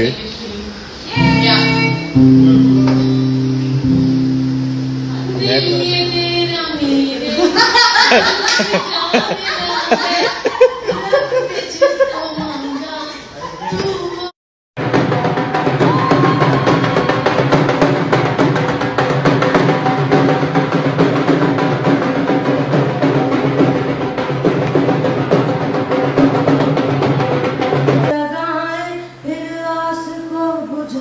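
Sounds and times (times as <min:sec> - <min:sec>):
woman singing solo: 0:01.1 - 0:02.5
dance music with drum beat: 0:14.8 - 0:28.1.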